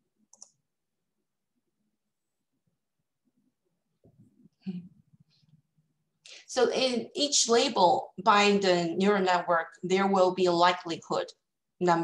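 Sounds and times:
computer mouse clicking: 0:00.3 - 0:00.6.

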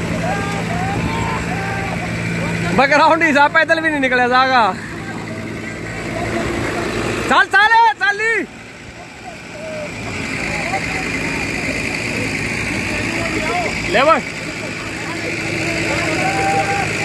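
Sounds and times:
car engine revving: 0:00.0 - 0:17.0
men shouting: 0:00.0 - 0:17.0
wheels spinning in mud: 0:08.5 - 0:17.0.

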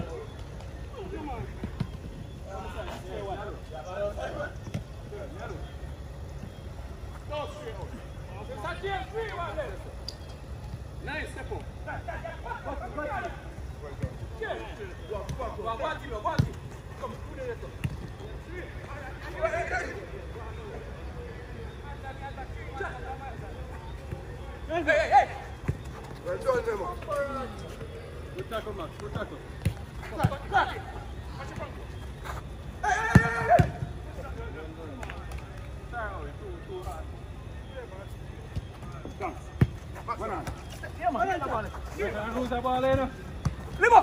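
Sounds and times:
footballers shouting: 0:00.0 - 0:10.0, 0:10.8 - 0:35.2, 0:37.2 - 0:44.0.

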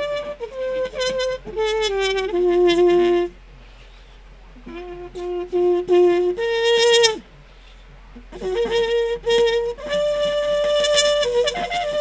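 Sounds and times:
solo trumpet melody: 0:00.0 - 0:04.0, 0:04.6 - 0:12.0.

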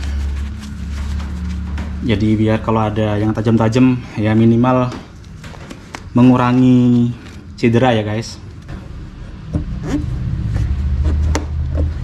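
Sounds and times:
handling noise behind plastic liner: 0:00.0 - 0:02.4.

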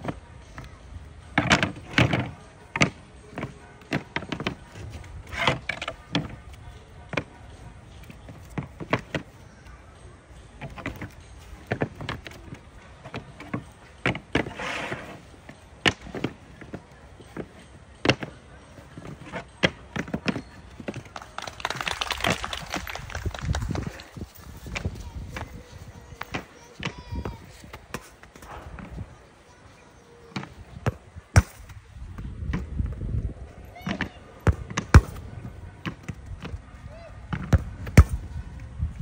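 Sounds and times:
soccer balls kicked and bouncing: 0:01.3 - 0:09.4, 0:10.6 - 0:21.2, 0:23.5 - 0:29.0, 0:30.3 - 0:39.0.

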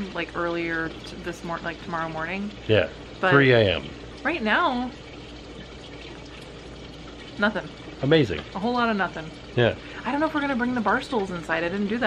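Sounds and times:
running water hiss: 0:00.0 - 0:12.0.

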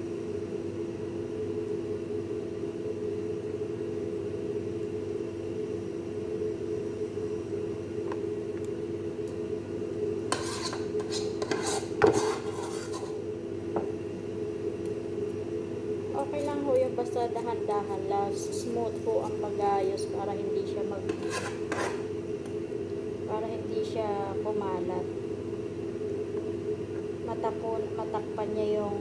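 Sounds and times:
steady hum: 0:00.0 - 0:29.0
cutlery scraping a glass dish: 0:10.3 - 0:13.2, 0:21.1 - 0:22.0.

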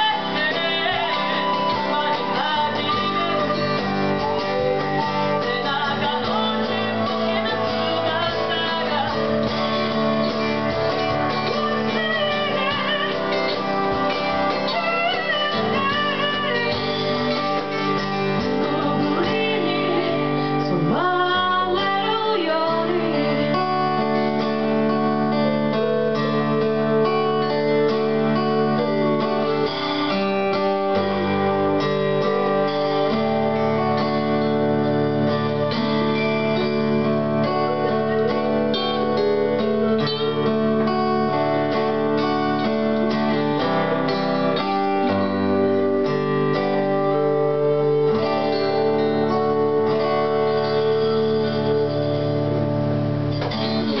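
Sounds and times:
acoustic guitar chords: 0:00.0 - 0:54.0
electric guitar chords: 0:00.0 - 0:54.0
flute playing: 0:00.9 - 0:07.2.

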